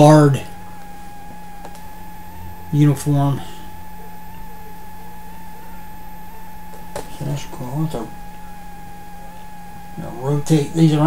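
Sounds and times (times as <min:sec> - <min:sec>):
electrical hum with whine: 0:00.0 - 0:11.0.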